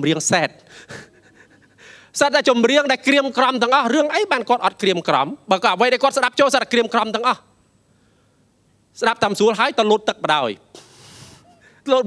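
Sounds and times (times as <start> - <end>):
man speaking into a microphone: 0.0 - 0.7, 2.1 - 7.5, 8.9 - 10.7, 11.8 - 12.0
breath noise into microphone: 0.6 - 2.2, 7.9 - 8.5, 10.7 - 11.8
intake of breath: 0.7 - 2.1, 10.8 - 11.8.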